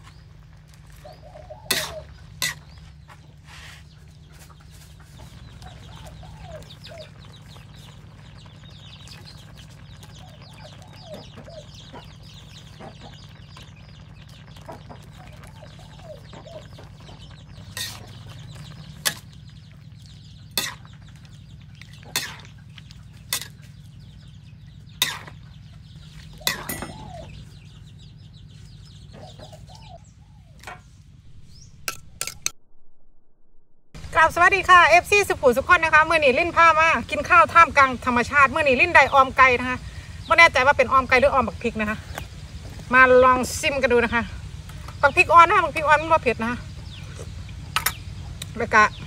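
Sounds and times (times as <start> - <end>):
chickens clucking: 0.0 - 30.8
steady low hum: 0.0 - 49.0.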